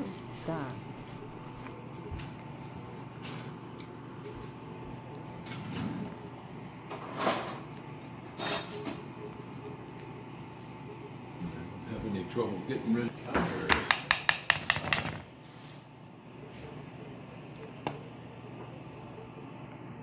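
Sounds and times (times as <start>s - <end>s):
faint hum: 0.0s - 13.4s, 15.2s - 20.0s.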